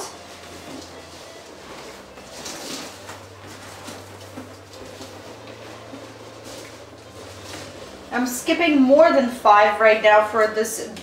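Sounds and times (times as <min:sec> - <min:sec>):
balloons rubbing together: 0:00.0 - 0:09.0
low steady hum: 0:00.0 - 0:11.0.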